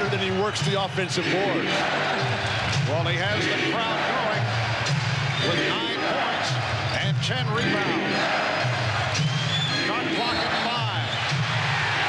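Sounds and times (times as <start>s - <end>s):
crowd cheering: 0.0s - 12.0s
music over public-address system: 0.0s - 12.0s.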